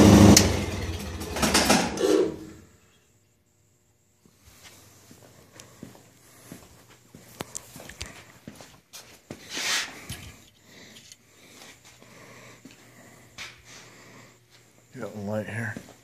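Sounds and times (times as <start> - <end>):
faint steady hum: 2.3 - 16.0
footsteps: 4.2 - 10.4, 15.7 - 16.0
breathy sniff: 9.4 - 14.7.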